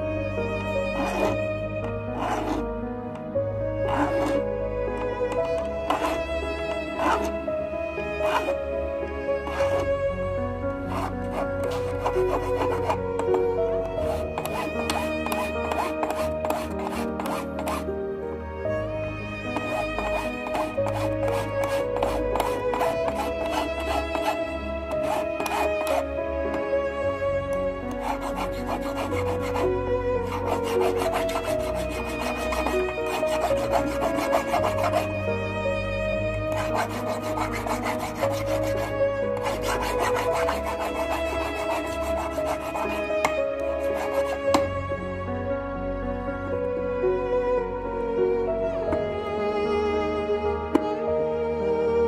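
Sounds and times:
background music: 0:00.0 - 0:52.0
hand file scraping metal wire: 0:01.0 - 0:01.4, 0:02.2 - 0:02.6, 0:03.9 - 0:04.4, 0:05.4 - 0:07.4, 0:08.2 - 0:08.5, 0:09.5 - 0:09.8, 0:10.8 - 0:13.4, 0:14.0 - 0:17.9, 0:19.5 - 0:26.1, 0:27.9 - 0:35.1, 0:36.5 - 0:44.6.

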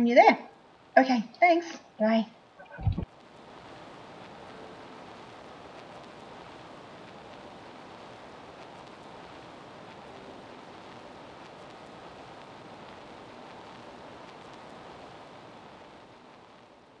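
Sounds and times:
steady hiss-like noise: 0:00.0 - 0:17.0.

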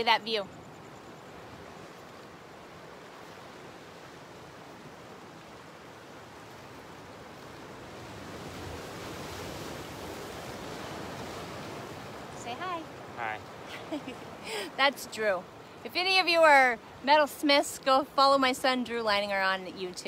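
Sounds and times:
waves breaking on a beach: 0:00.0 - 0:20.0.

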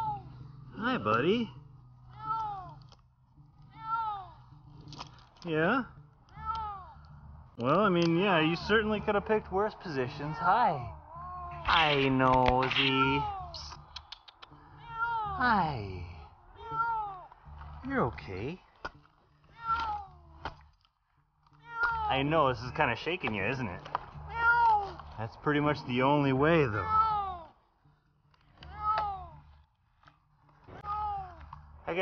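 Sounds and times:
sharp click: 0:11.7 - 0:14.5
cat meowing: 0:14.7 - 0:15.5, 0:16.1 - 0:17.3, 0:19.5 - 0:20.3, 0:21.6 - 0:22.1, 0:24.3 - 0:25.0.

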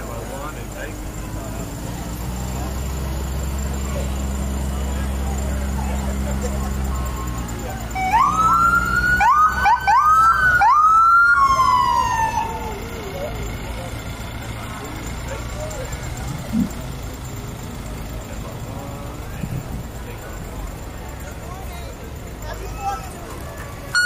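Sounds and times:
police siren whoops and wail: 0:07.1 - 0:13.4.

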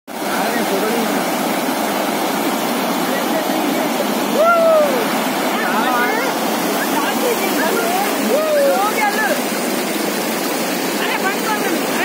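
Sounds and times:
water rushing over causeway: 0:00.1 - 0:12.0
voices: 0:03.0 - 0:09.5, 0:11.0 - 0:12.0.

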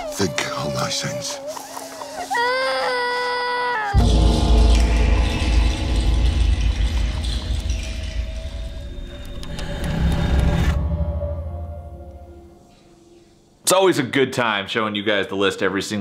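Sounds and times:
high-pitched cry: 0:00.0 - 0:04.0
deep rumbling score: 0:04.0 - 0:13.5.

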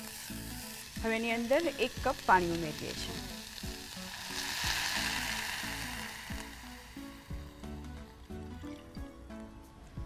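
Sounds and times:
sizzling and splashing in hot oil: 0:00.0 - 0:09.0.

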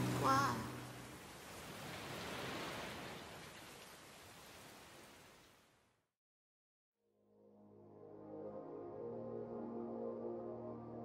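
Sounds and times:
soft rain hiss: 0:00.0 - 0:05.8.

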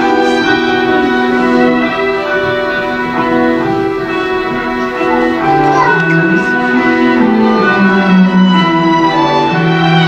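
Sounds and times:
string ensemble playing a carol: 0:00.0 - 0:10.0.

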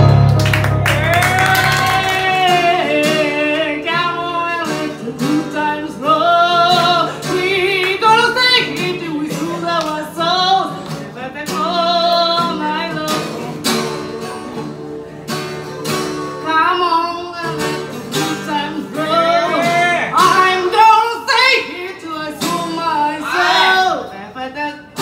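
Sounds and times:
strummed acoustic guitar: 0:00.0 - 0:24.0
young woman singing: 0:01.0 - 0:13.5, 0:16.4 - 0:19.6, 0:20.2 - 0:25.0.

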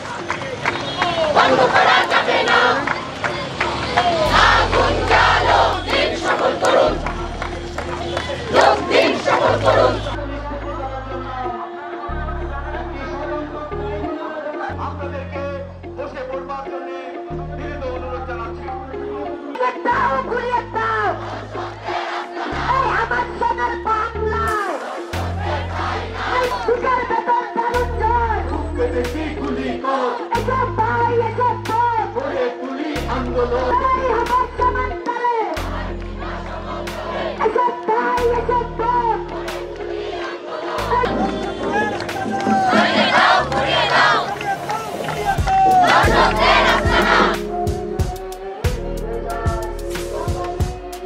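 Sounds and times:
hands clapping in time: 0:00.0 - 0:09.9, 0:39.2 - 0:47.5
crowd chanting: 0:00.0 - 0:10.2, 0:19.2 - 0:50.9
group of voices singing: 0:01.2 - 0:51.0
low bass notes: 0:04.2 - 0:14.1, 0:22.5 - 0:24.6, 0:25.2 - 0:27.1, 0:27.8 - 0:29.8, 0:30.4 - 0:32.4, 0:33.0 - 0:35.0, 0:35.6 - 0:40.1, 0:40.8 - 0:44.0, 0:45.1 - 0:51.0.

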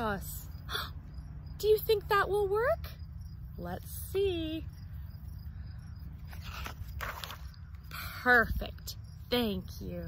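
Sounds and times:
paper page rustling and turning: 0:06.2 - 0:07.8.

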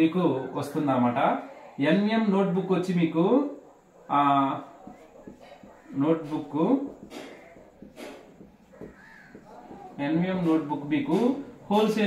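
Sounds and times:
marker squeaking on whiteboard: 0:03.6 - 0:12.0.

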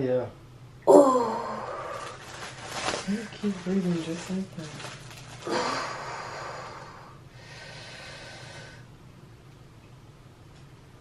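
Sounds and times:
woman breathing heavily: 0:05.4 - 0:08.9.

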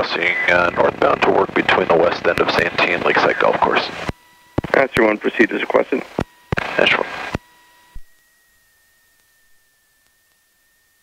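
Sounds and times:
radio voice over intercom: 0:00.0 - 0:04.0, 0:04.6 - 0:07.2
faint high whine: 0:00.0 - 0:11.0.

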